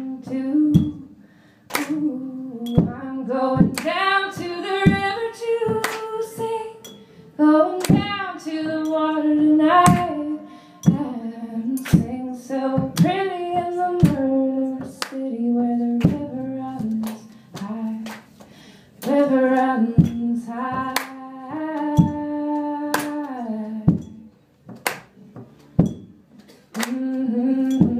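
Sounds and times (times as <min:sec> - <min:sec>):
woman singing wordless melody: 0:00.0 - 0:18.3, 0:19.0 - 0:24.4, 0:26.7 - 0:27.9.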